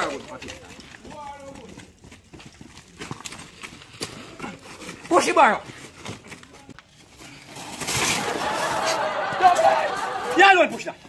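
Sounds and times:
wheelbarrow tipping over: 0:07.5 - 0:09.9
sand and gravel spilling: 0:07.5 - 0:10.4.

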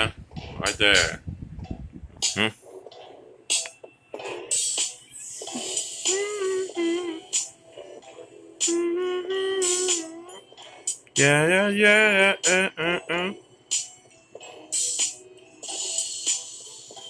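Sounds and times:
person singing long held notes: 0:08.6 - 0:10.2
song playing: 0:11.1 - 0:13.4.

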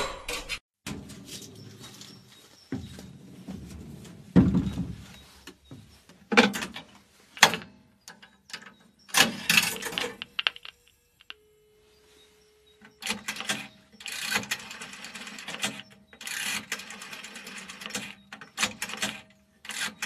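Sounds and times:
telephone handset clunk and rattle: 0:06.4 - 0:11.4.

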